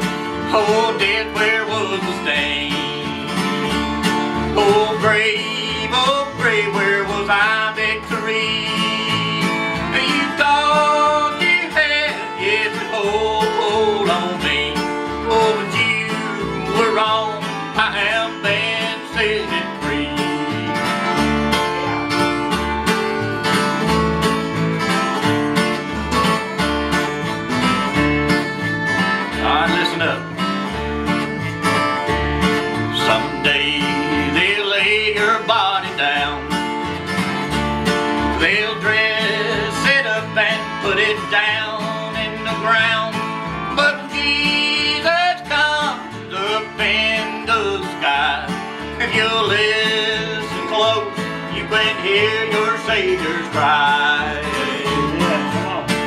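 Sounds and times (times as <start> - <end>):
bass fiddle: 0.0 - 56.0
fiddle melody: 0.0 - 56.0
strummed acoustic guitars: 0.0 - 56.0.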